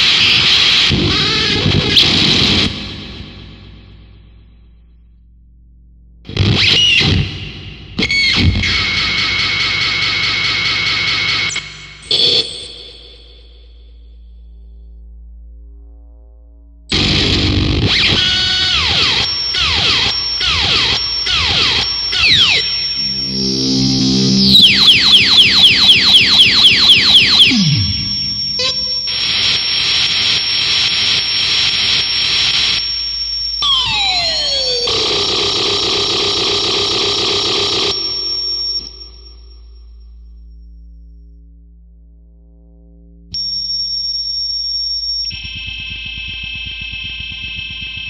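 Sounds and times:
distorted electronic noise music: 0.0s - 3.9s, 16.9s - 32.8s, 45.3s - 48.0s.

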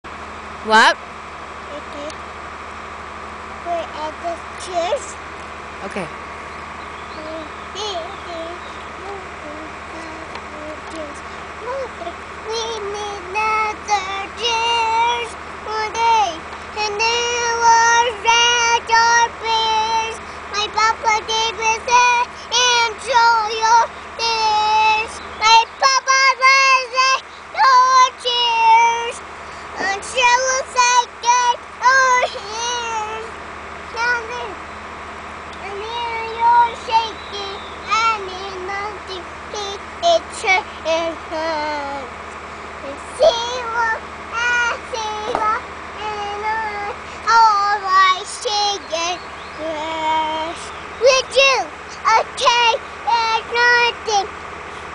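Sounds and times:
child singing in high voice: 3.7s - 5.2s, 7.2s - 29.2s, 29.8s - 33.3s, 33.9s - 34.6s, 35.6s - 42.1s, 42.8s - 54.3s.

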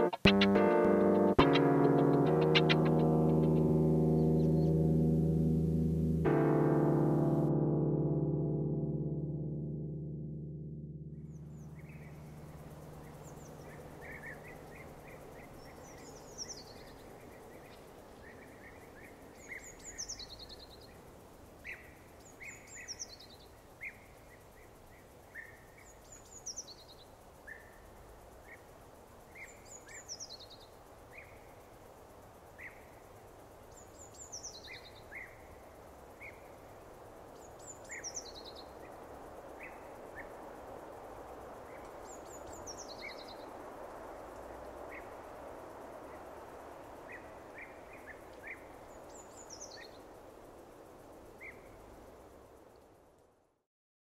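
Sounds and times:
bird chirps: 0.0s - 4.8s
soft background hiss: 0.0s - 53.6s.

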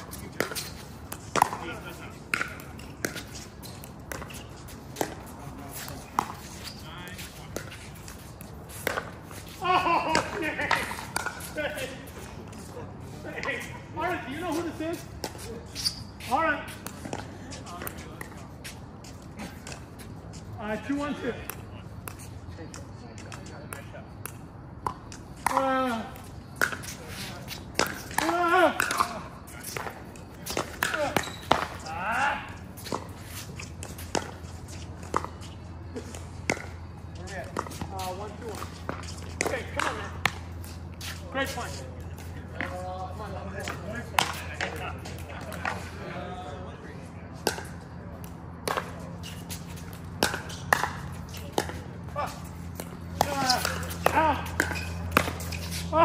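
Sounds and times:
ball bouncing on hard court: 0.0s - 11.5s, 27.7s - 33.1s, 36.4s - 36.8s, 48.6s - 55.8s
steady low hum: 0.0s - 56.0s
paddles hitting plastic ball: 0.3s - 6.4s, 7.5s - 11.5s, 50.1s - 56.0s.

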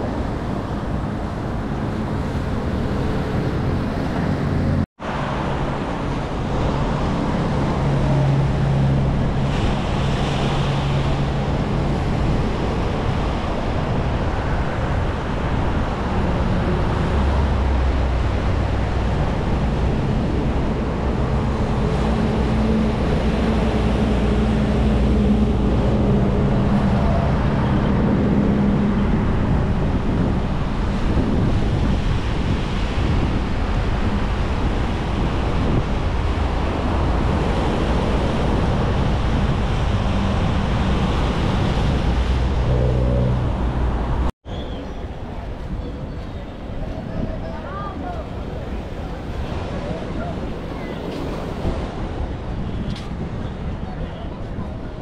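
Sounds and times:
wind on microphone: 0.0s - 55.0s
small waves breaking on shore: 46.6s - 53.4s.

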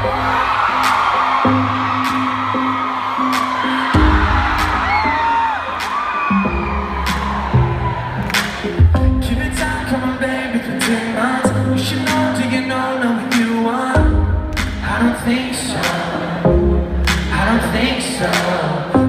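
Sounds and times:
audience cheering: 0.0s - 11.1s
live pop band playing: 0.0s - 19.0s.

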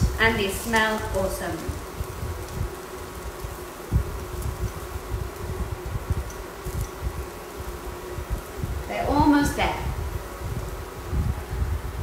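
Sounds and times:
induction hob humming: 0.0s - 12.0s.

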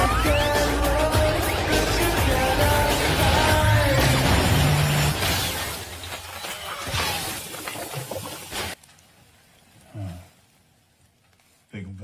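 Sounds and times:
crackling sparks: 0.0s - 7.5s
fiery blast: 2.4s - 5.8s
debris shattering and clattering: 2.9s - 8.8s.

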